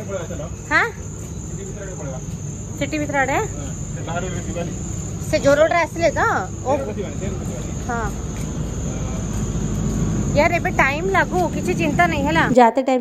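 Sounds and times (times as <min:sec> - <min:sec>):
crickets chirping: 0:00.0 - 0:12.6.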